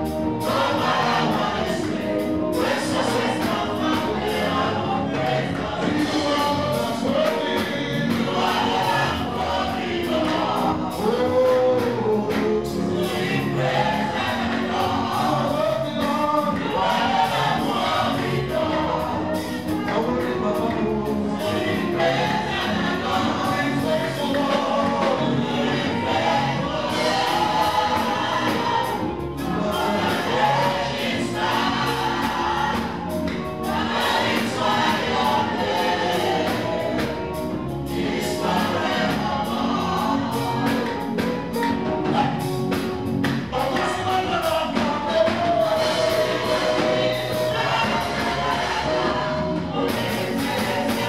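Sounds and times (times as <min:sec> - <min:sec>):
women singing backing vocals: 0:00.0 - 0:42.8, 0:43.5 - 0:51.0
instrumental music with steady beat: 0:00.0 - 0:51.0
man singing lead: 0:10.0 - 0:16.8, 0:19.5 - 0:27.9, 0:43.5 - 0:46.8
man singing into microphone: 0:43.5 - 0:46.3.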